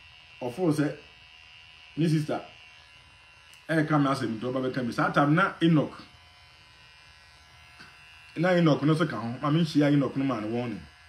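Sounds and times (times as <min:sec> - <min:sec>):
electric hair clipper buzzing: 0:00.0 - 0:11.0
person talking: 0:02.0 - 0:02.5, 0:08.4 - 0:10.9.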